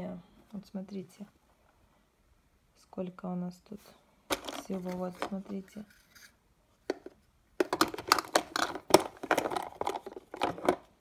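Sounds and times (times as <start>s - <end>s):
small objects rattling in plastic box: 4.3s - 5.5s, 6.9s - 11.0s.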